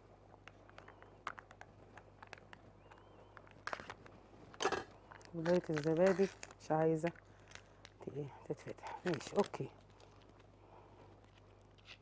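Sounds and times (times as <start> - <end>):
plastic rustles: 2.2 - 8.0, 8.6 - 12.0.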